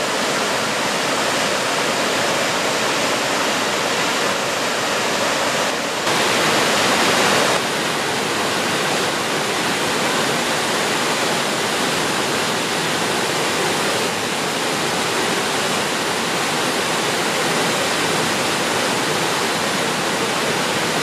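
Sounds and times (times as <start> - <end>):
waterfall rushing over rocks: 0.0 - 21.0.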